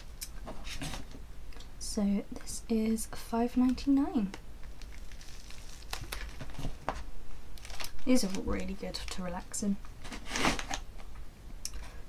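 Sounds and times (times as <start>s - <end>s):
faint low hum: 0.0s - 12.0s
packet crinkling and clicking: 4.3s - 9.4s.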